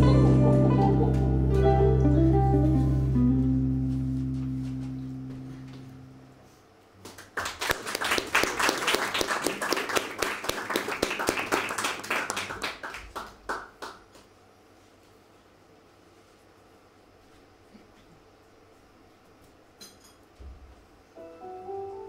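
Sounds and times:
held chord of a song: 0:00.0 - 0:06.4, 0:21.2 - 0:22.0
audience applauding: 0:07.0 - 0:14.1.

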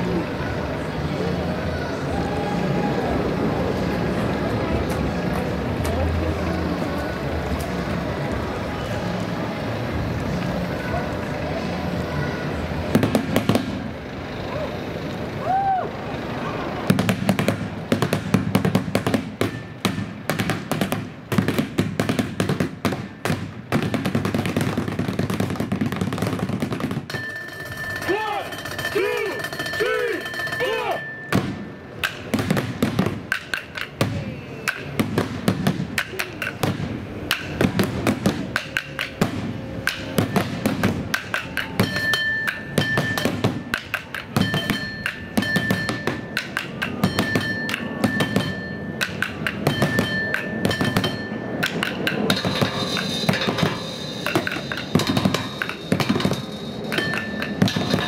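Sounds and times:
drumsticks beating barrels and buckets: 0:16.9 - 0:58.0.

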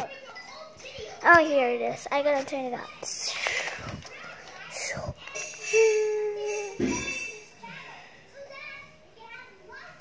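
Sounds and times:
faint child speech: 0:00.0 - 0:10.0
steady held tone: 0:05.4 - 0:07.7.

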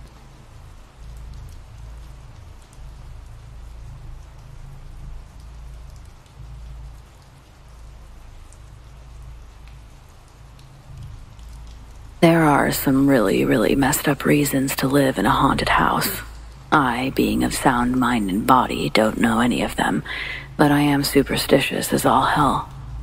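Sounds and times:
steady rain patter: 0:00.0 - 0:23.0.

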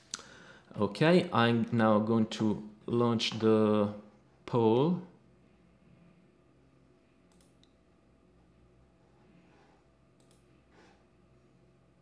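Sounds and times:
faint computer mouse clicks: 0:07.3 - 0:07.8, 0:10.2 - 0:10.5.

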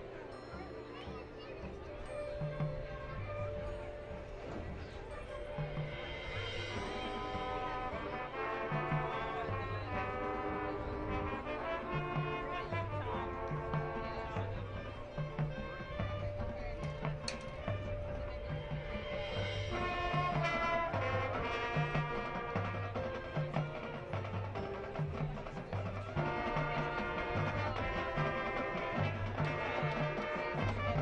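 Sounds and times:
brass chords: 0:05.0 - 0:31.0.

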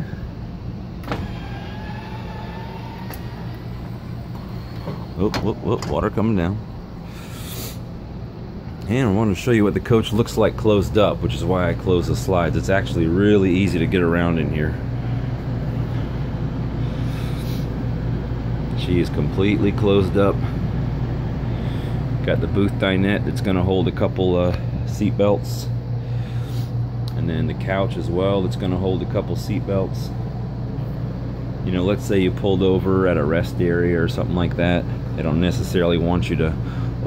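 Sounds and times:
low machine hum: 0:00.0 - 0:37.0
electric motor humming: 0:01.0 - 0:05.4.

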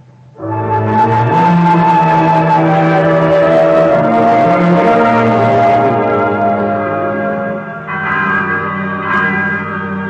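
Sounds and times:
background music: 0:00.1 - 0:10.0
bells ringing: 0:04.0 - 0:10.0.

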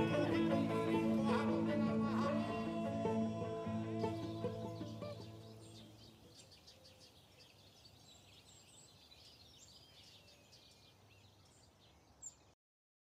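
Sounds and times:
birds chirping: 0:00.0 - 0:12.6.

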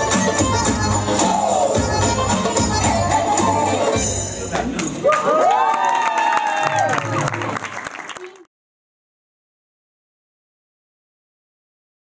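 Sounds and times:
voices whooping: 0:05.0 - 0:07.1
audience applauding and cheering: 0:05.0 - 0:08.5.

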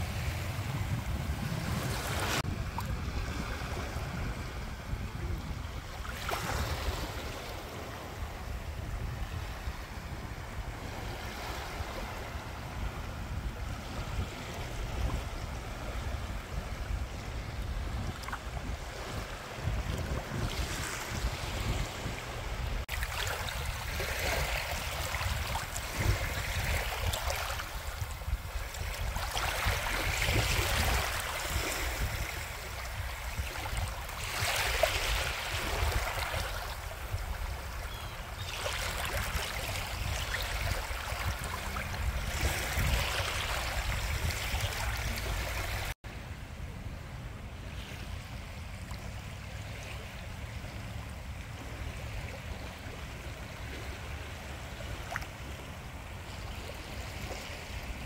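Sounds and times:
small waves lapping on shore: 0:00.0 - 0:58.0
wind rumbling on microphone: 0:00.0 - 0:58.0.

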